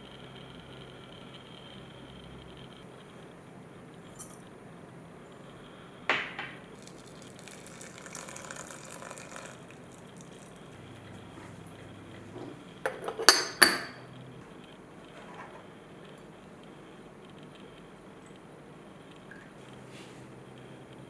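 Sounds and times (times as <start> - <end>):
teapot lid clinking: 6.1 - 9.6.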